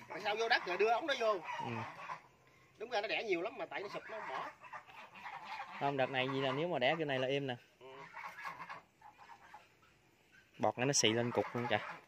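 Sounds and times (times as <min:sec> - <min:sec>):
geese honking: 0:00.0 - 0:12.0.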